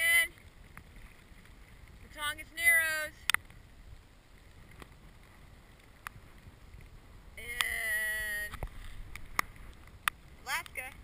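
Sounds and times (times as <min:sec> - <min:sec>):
choppy water around kayak: 0:00.0 - 0:11.0
wind: 0:00.0 - 0:11.0.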